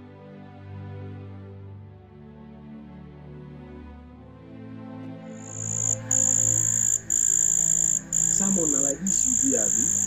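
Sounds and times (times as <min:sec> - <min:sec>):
soft background music: 0:00.0 - 0:10.0
night creatures trilling: 0:05.5 - 0:10.0.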